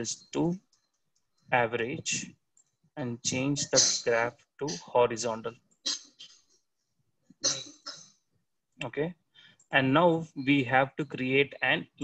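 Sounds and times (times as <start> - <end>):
person narrating: 3.0 - 5.4.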